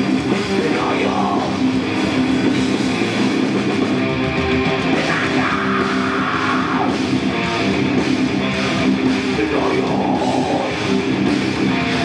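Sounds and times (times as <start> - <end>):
bass guitar: 0.0 - 12.0
distorted electric guitars: 0.0 - 12.0
drums: 0.0 - 12.0.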